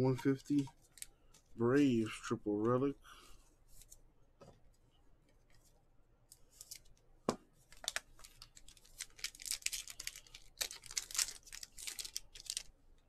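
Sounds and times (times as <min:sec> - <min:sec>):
plastic rustling and crinkling: 0:06.4 - 0:12.8.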